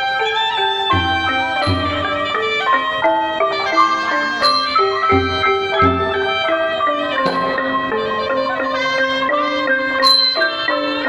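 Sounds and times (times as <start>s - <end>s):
low drum strokes: 0.9s - 8.8s
xylophone ringing notes: 0.9s - 8.9s
gong circle: 1.0s - 8.6s.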